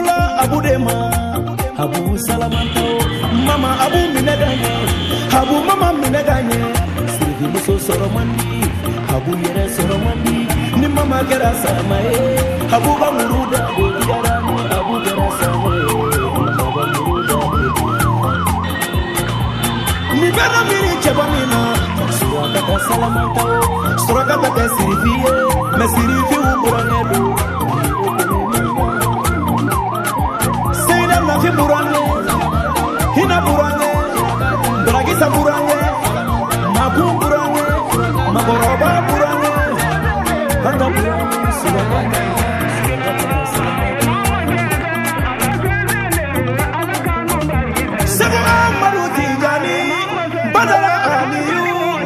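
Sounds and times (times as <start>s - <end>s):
background music with steady beat: 0.0s - 52.0s
siren yelping: 0.0s - 52.0s.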